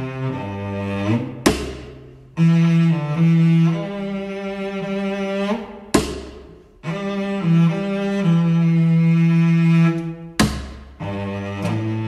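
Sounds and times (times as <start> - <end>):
bowed cello and double bass: 0.0 - 12.0
sharp percussive strike: 1.5 - 2.1, 6.0 - 6.6, 10.4 - 11.0.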